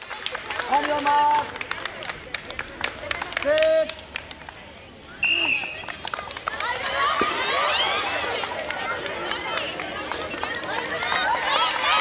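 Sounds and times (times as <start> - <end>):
shrill whistle blast: 5.2 - 5.8
crowd shouting and cheering: 5.2 - 12.0.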